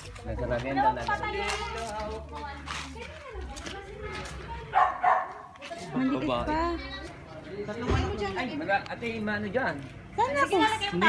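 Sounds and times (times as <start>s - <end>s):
dog barking: 4.7s - 5.6s.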